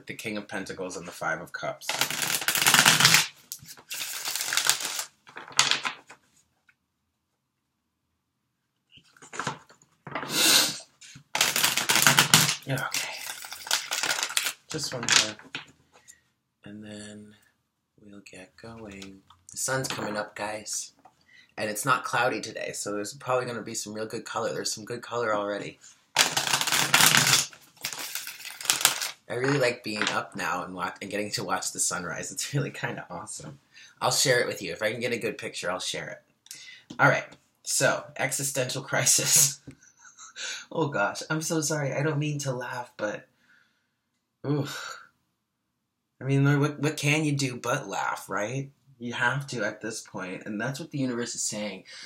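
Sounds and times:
cards being shuffled by hand: 0:01.9 - 0:06.2, 0:09.1 - 0:10.4, 0:11.1 - 0:15.7, 0:26.2 - 0:30.2.

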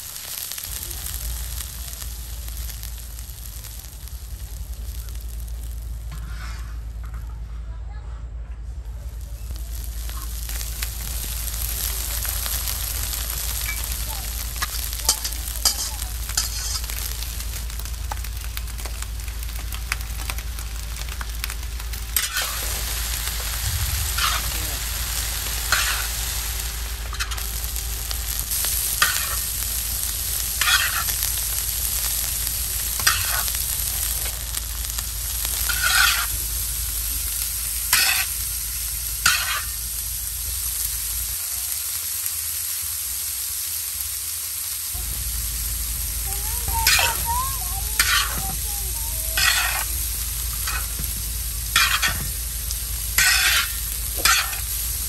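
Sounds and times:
noodles sizzling on a pan: 0:00.0 - 0:07.3, 0:08.8 - 0:55.0.

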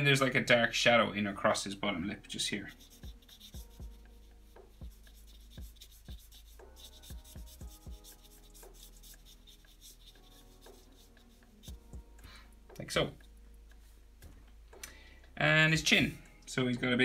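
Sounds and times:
marker scratching on paper: 0:02.7 - 0:12.2.

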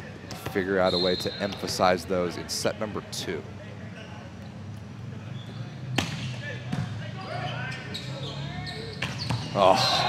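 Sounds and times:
players calling out: 0:07.2 - 0:10.0.

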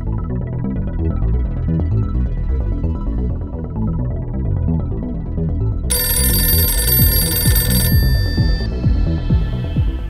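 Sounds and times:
telephone bell ringing: 0:05.9 - 0:09.3.

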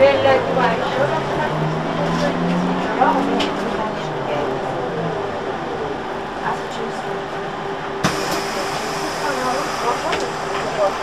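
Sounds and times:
indistinct passenger voices: 0:00.0 - 0:11.0.

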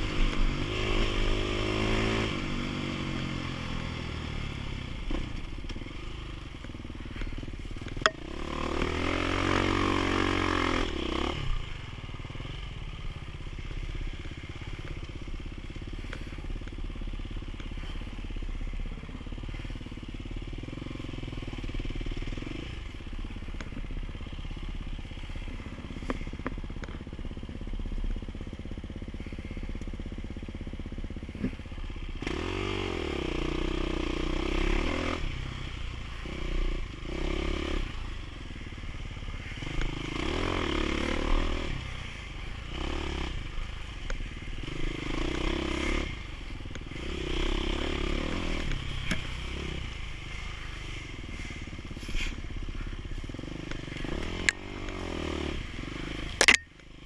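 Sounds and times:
dirt bike engine revving: 0:00.0 - 0:03.8, 0:08.0 - 0:11.8, 0:32.2 - 0:35.3, 0:39.4 - 0:56.6.

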